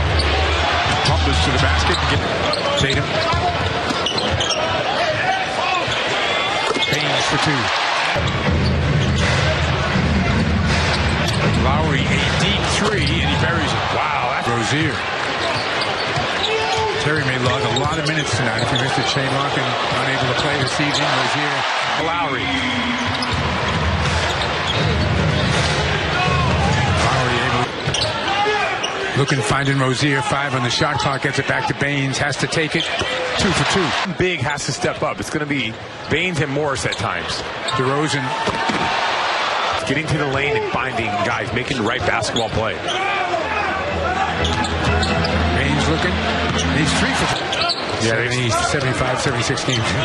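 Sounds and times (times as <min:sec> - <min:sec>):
arena crowd noise: 0:00.0 - 0:50.0
commentator speaking: 0:11.6 - 0:15.0.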